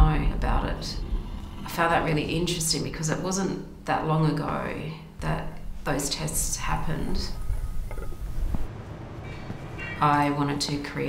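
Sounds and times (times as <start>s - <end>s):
gas furnaces rumbling: 0.0s - 3.5s, 5.7s - 11.0s
room noise: 7.4s - 11.0s.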